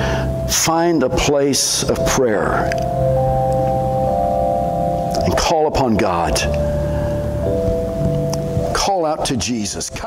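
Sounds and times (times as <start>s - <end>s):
sustained keyboard chords: 0.0s - 10.0s
low bass note: 0.4s - 9.0s.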